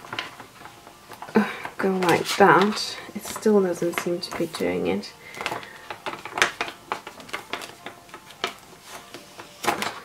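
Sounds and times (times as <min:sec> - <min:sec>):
stiff plastic sheet clicking: 0:00.0 - 0:10.0.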